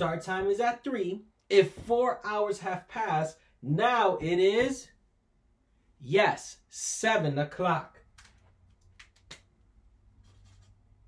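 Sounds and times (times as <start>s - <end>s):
marker scratching paper: 10.2s - 10.8s.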